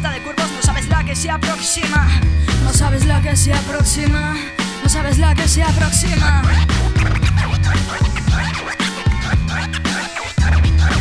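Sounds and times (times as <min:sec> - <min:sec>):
bass line: 0:00.0 - 0:11.0
hip hop beat: 0:00.0 - 0:11.0
turntable record scratching: 0:04.9 - 0:11.0.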